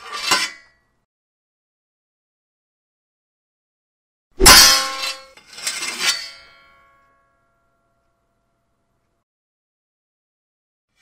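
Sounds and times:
metal armour crashing: 4.4s - 5.3s.

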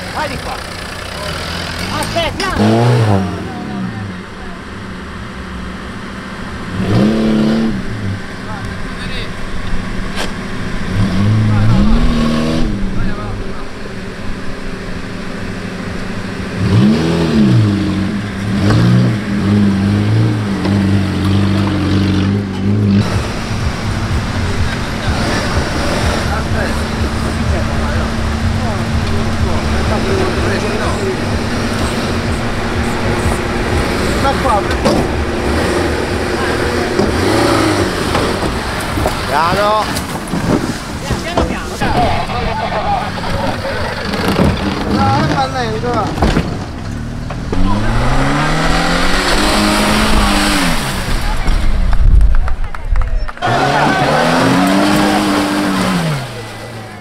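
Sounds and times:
small car engine revving: 0.0s - 41.0s, 41.7s - 52.1s, 53.4s - 57.0s.

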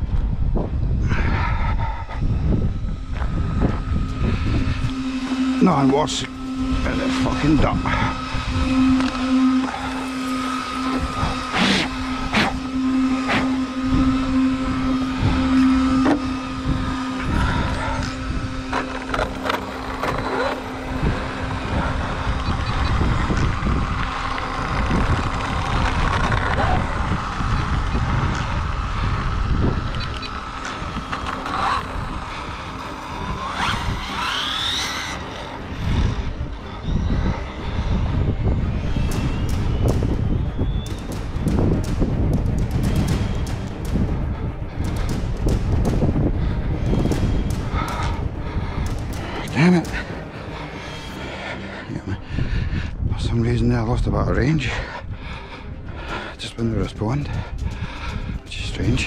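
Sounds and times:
wind noise: 0.0s - 34.3s, 35.5s - 59.0s
electric motor whine: 0.0s - 53.1s, 54.4s - 59.0s
road rumble: 0.0s - 53.3s
steady hum: 0.0s - 59.0s.

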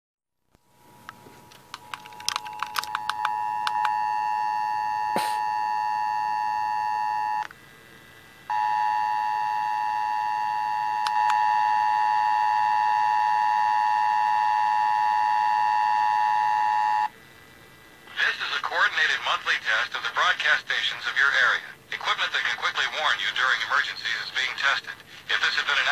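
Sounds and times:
radio clicks: 1.5s - 4.0s.

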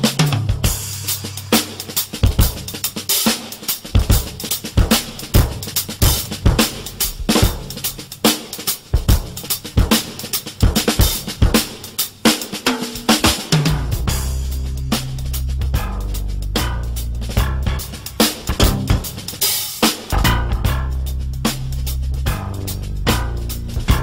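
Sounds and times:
drum kit playing a groove: 0.0s - 24.0s
low bass notes: 13.8s - 19.4s, 20.1s - 24.0s.

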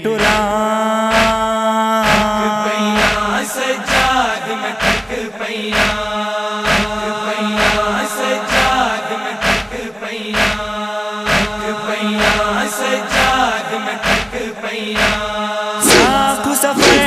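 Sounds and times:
men chanting a lament: 0.0s - 17.0s
rhythmic chest-beating slaps: 0.1s - 17.0s.

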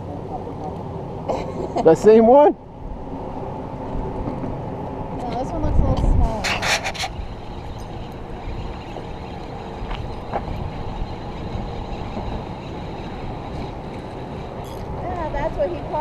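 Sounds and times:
wind buffeting microphone: 2.8s - 16.0s.

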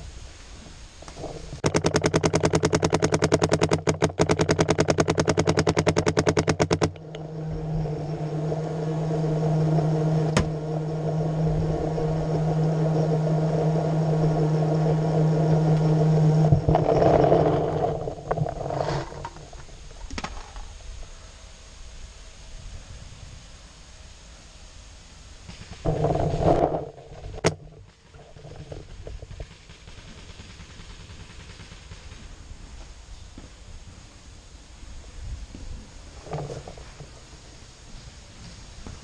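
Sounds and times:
steady droning hum: 0.0s - 39.0s
paintball marker firing: 1.6s - 7.0s
sharp click: 1.6s - 7.1s.

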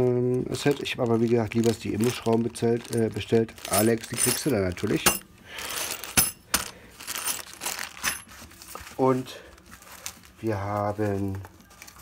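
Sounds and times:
plastic bag crinkling: 0.0s - 12.0s
screws clinking in plastic bag: 0.5s - 9.1s.

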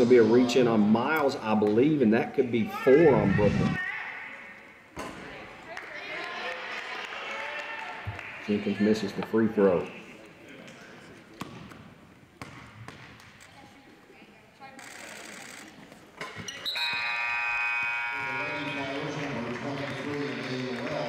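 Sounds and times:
basketball bouncing on hardwood floor: 12.4s - 13.2s.

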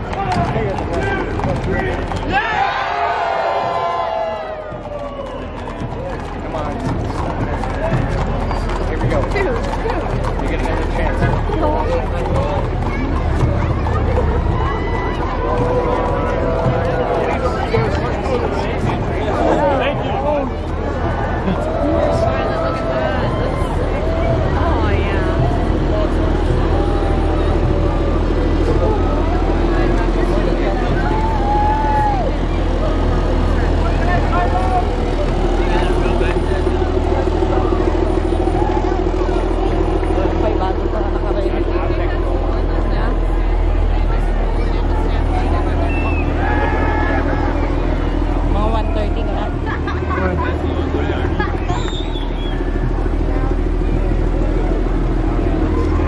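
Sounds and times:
spectators voices and calls: 0.0s - 56.0s
vehicle engines droning: 0.0s - 56.0s.

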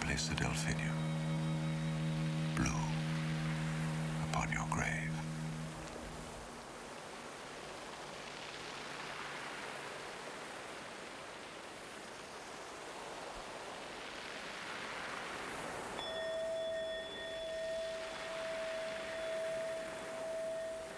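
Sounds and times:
bell-like tone ringing: 0.0s - 6.4s, 16.0s - 20.9s
soft wash of noise: 0.0s - 20.9s.

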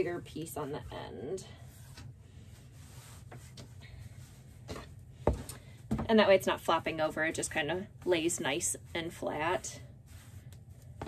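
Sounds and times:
fabric rustling: 0.0s - 6.3s, 8.1s - 11.0s.

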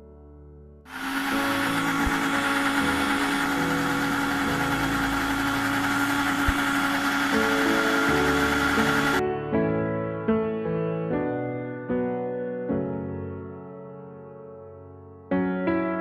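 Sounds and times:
mixer grinder motor whirring: 0.9s - 9.2s.

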